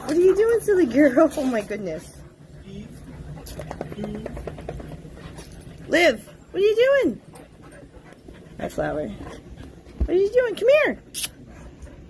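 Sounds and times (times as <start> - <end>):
dogs grunting and snuffling: 0.0 - 12.0.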